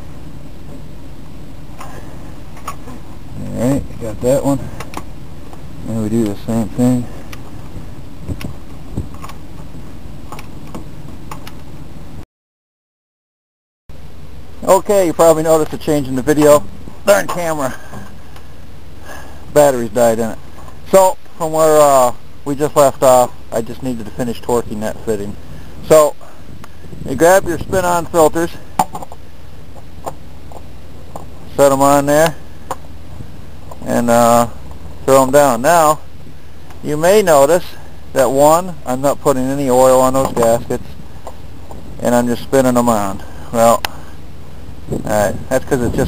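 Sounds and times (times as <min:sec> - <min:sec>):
steady low hum: 0:00.0 - 0:12.2, 0:13.9 - 0:46.0.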